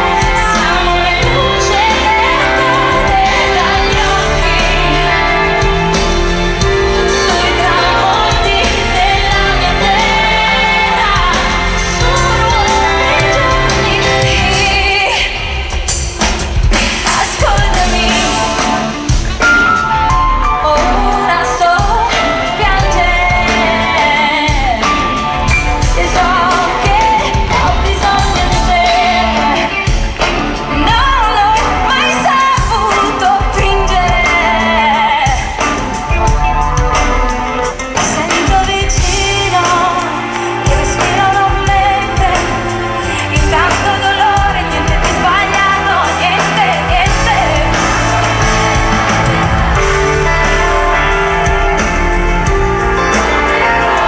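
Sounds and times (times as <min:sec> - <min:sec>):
pop-rock band playing: 0:00.0 - 0:54.0
woman singing: 0:00.0 - 0:54.0.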